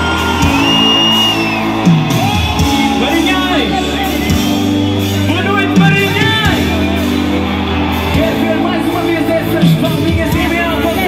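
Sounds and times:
loud live pop music: 0.0 - 11.0.

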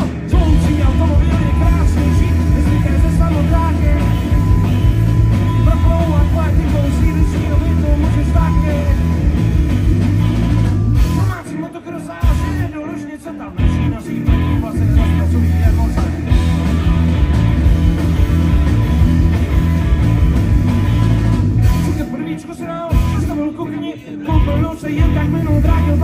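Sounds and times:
bass guitar: 0.0 - 26.0
drums: 0.0 - 26.0
electric guitars: 0.0 - 26.0.

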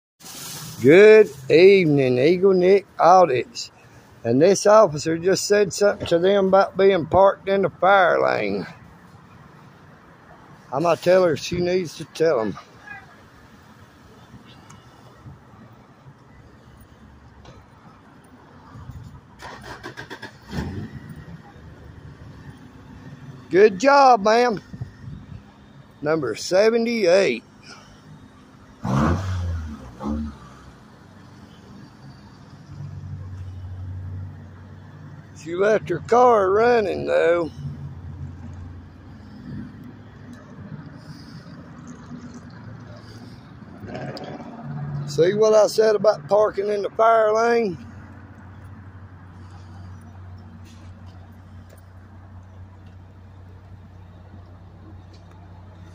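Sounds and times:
outdoor background noise: 0.2 - 55.9
traffic and car engines rumbling: 0.2 - 55.9.

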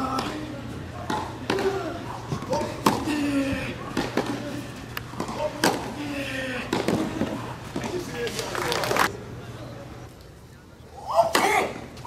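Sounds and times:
racket hitting tennis ball: 2.5 - 3.1, 5.2 - 6.0.

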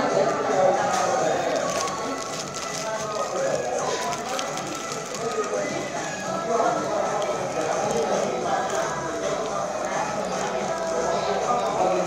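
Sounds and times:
indistinct restaurant chatter: 0.0 - 12.0
chewing a burger: 0.8 - 12.0.

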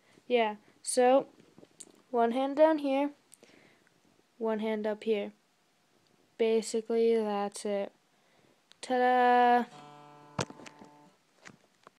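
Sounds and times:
guitar strings ringing: 9.7 - 11.2
phone handling clicks: 10.4 - 11.0.

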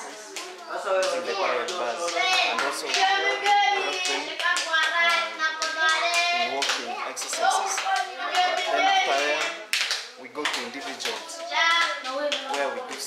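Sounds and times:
children chanting: 0.0 - 9.9, 10.7 - 13.0
hand claps: 0.0 - 13.0.

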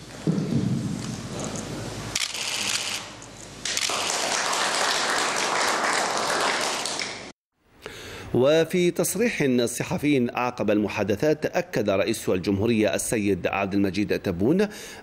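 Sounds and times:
applause: 3.7 - 7.3.

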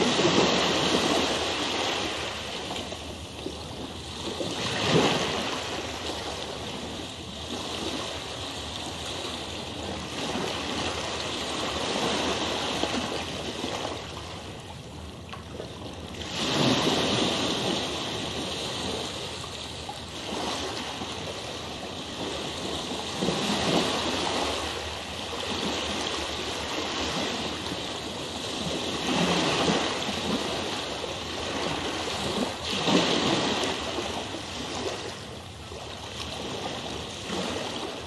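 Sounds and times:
rushing water: 0.0 - 38.0.

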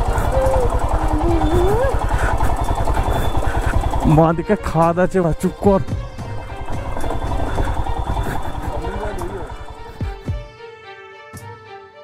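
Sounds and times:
motorcycle engine running: 0.0 - 10.5.

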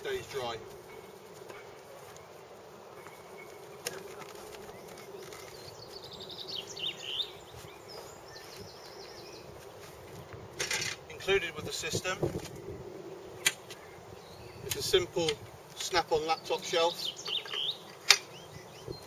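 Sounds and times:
sharp click: 13.4 - 13.8.

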